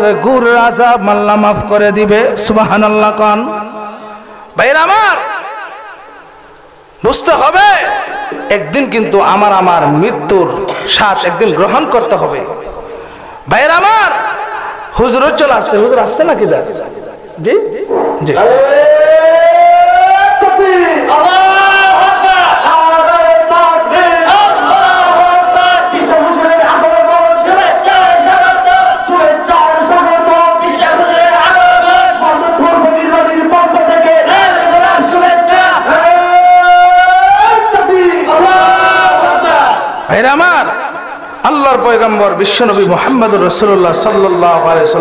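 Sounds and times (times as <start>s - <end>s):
man chanting into a microphone: 0.0s - 5.4s, 7.0s - 45.0s.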